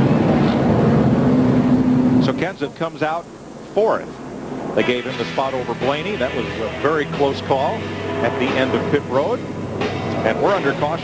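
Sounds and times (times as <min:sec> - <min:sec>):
race car engine drone: 0:00.0 - 0:03.4, 0:04.1 - 0:11.0.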